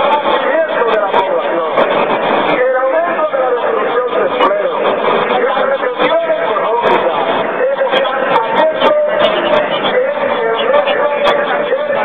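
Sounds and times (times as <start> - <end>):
person's voice with bending pitch: 0.0 - 12.0.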